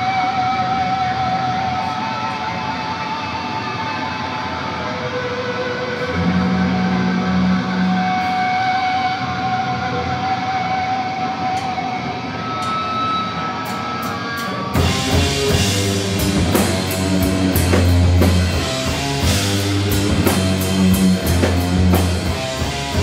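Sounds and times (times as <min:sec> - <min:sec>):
electric guitars held notes: 0:00.0 - 0:23.0
full band with drums: 0:00.0 - 0:23.0.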